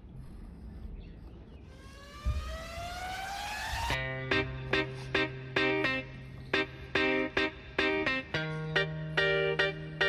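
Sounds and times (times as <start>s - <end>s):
rising electronic sweep: 1.7s - 4.6s.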